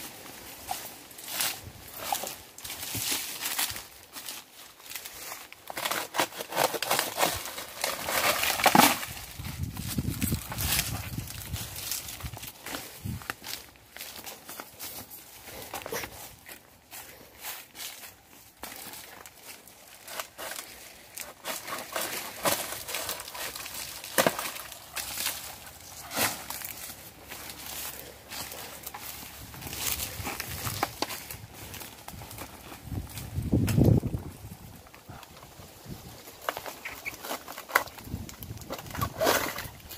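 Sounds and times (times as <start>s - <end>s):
rustling in vegetation: 0.0s - 39.9s.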